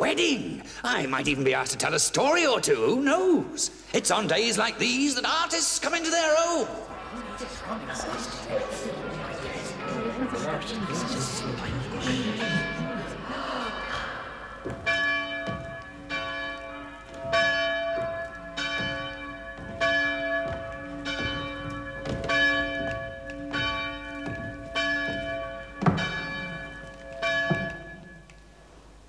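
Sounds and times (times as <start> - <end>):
church bells pealing: 5.3 - 28.6.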